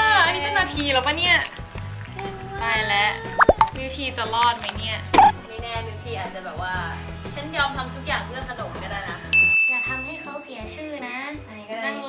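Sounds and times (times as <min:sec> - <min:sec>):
light background music: 0:00.0 - 0:12.0
cartoon plop sound effect: 0:03.4 - 0:03.8, 0:05.1 - 0:05.4.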